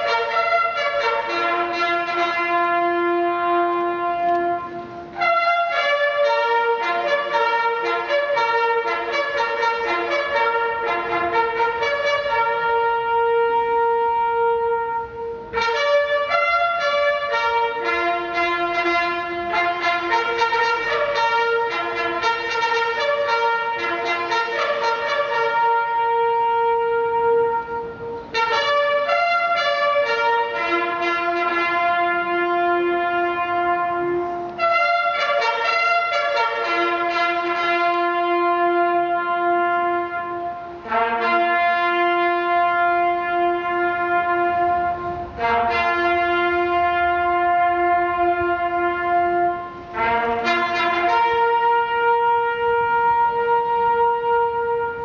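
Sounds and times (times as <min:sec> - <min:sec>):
bugles sounding a slow call: 0:00.0 - 0:55.0.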